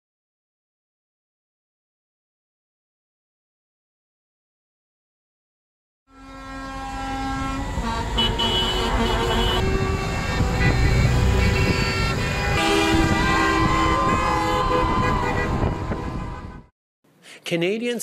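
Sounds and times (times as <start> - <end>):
highway traffic passing: 6.1 - 16.7
vehicle horns honking: 6.1 - 16.7.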